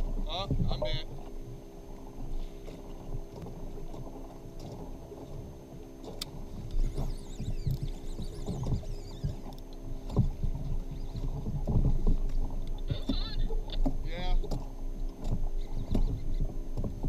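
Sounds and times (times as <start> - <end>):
water slapping against boat hull: 0.0 - 17.0.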